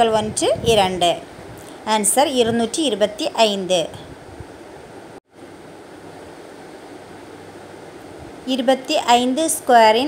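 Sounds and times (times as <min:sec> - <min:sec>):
room tone hiss: 0:00.2 - 0:10.0.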